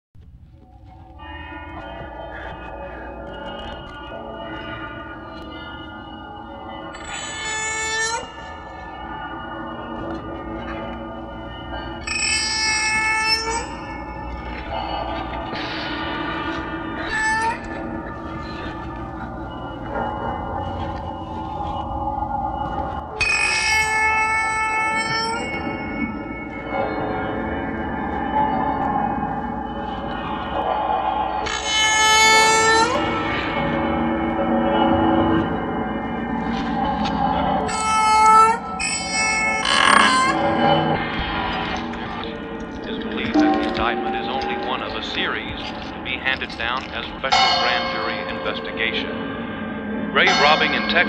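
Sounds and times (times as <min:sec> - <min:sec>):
ringing metallic tones: 0:00.9 - 0:51.0
harsh high-pitched screech: 0:37.7 - 0:42.3.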